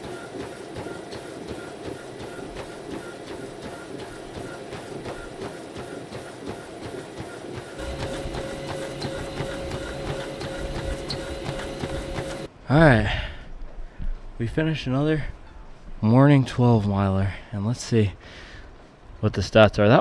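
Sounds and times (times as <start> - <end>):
running footfalls on treadmill: 0.0 - 12.5
treadmill running hum: 0.0 - 12.5
steady hum: 0.0 - 12.6.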